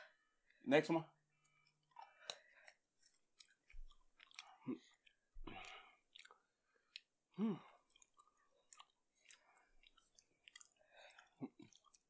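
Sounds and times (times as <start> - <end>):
chewing peanuts: 1.4 - 12.0.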